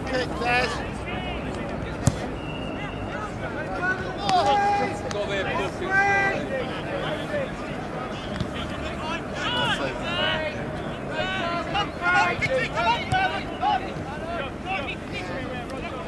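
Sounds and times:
players shouting: 0.0s - 16.0s.

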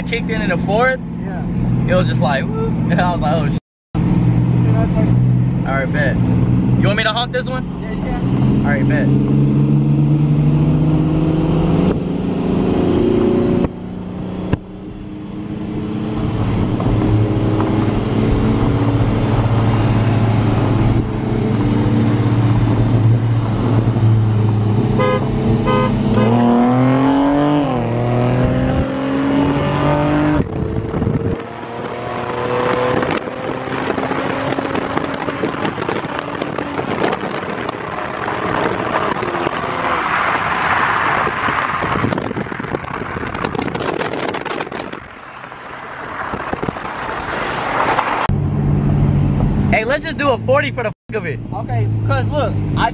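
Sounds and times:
car engines revving: 0.0s - 52.9s
wind and road rush: 0.0s - 52.9s
car horn honks: 24.9s - 26.8s.

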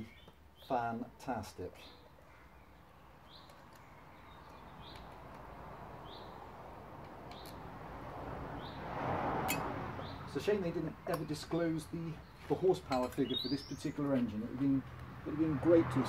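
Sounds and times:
bird chirping: 0.0s - 1.0s, 1.6s - 5.4s, 6.0s - 6.5s, 10.0s - 15.4s.

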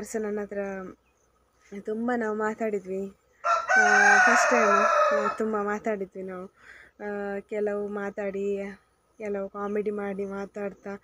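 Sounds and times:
woman talking: 0.0s - 1.0s, 1.6s - 3.2s, 3.8s - 11.0s
rooster crowing: 3.4s - 5.6s.

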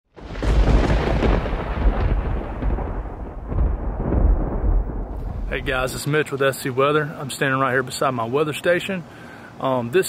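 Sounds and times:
deep rolling thunder rumble: 0.1s - 6.3s
thunder crackle: 0.1s - 6.4s.

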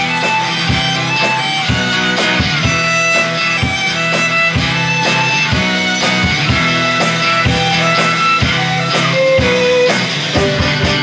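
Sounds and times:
strummed acoustic guitar: 0.0s - 11.0s
violin long held notes: 0.0s - 11.0s.

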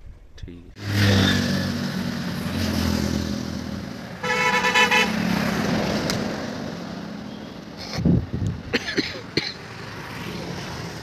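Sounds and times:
road traffic: 0.0s - 11.0s
vehicle horn honking: 4.2s - 5.2s.

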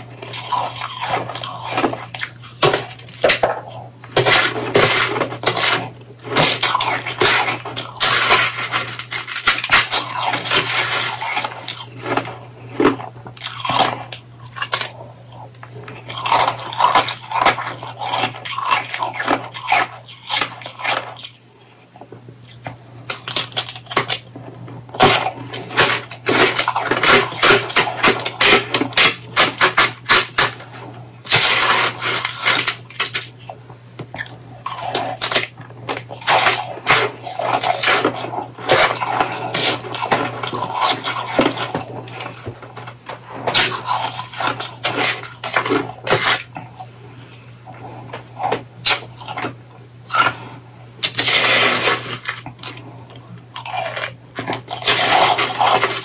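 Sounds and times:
plastic spoon scraping ice: 0.0s - 21.4s, 22.4s - 46.9s, 47.7s - 56.0s
crunching and chewing shaved ice: 0.0s - 56.0s
steady low hum: 0.0s - 56.0s.

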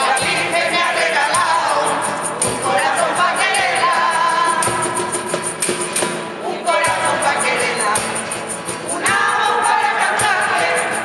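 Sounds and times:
choir singing in unison: 0.0s - 5.1s, 6.3s - 8.2s, 8.8s - 11.0s
clicking hand percussion: 0.0s - 11.0s
guitars: 0.0s - 11.0s.

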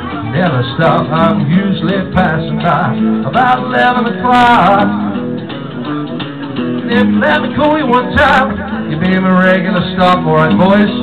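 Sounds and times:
bass guitar playing: 0.0s - 11.0s
electric guitar playing: 0.0s - 11.0s.

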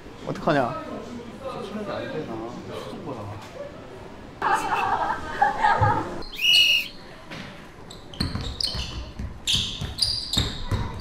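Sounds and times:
sneakers squeaking on floor: 7.8s - 11.0s
basketball bouncing on hardwood: 8.2s - 11.0s.

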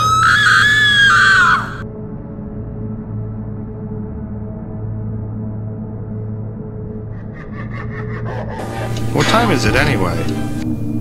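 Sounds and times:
high-pitched human scream: 0.0s - 1.8s
dark ambient music: 0.0s - 11.0s.

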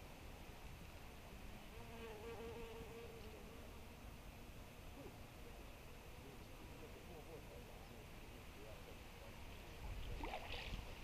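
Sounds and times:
insect buzzing: 1.5s - 4.0s.

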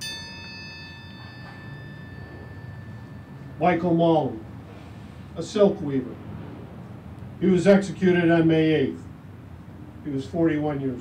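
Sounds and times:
bell ringing: 0.0s - 4.6s.

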